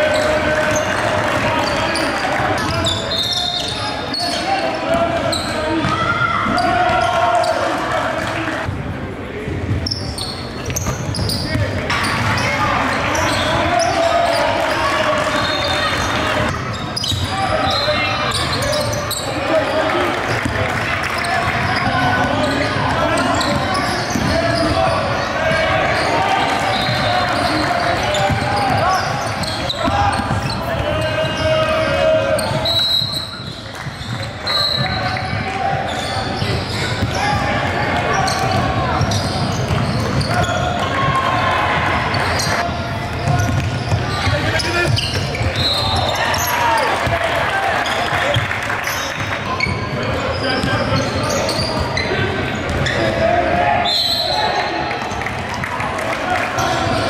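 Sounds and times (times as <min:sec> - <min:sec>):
echoing voices: 0:00.0 - 0:57.0.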